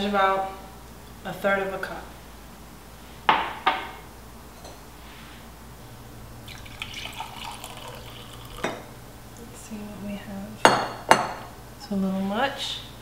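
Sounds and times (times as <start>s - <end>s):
liquid pouring into glass cup: 6.4s - 9.1s
glass clinking: 6.5s - 8.9s.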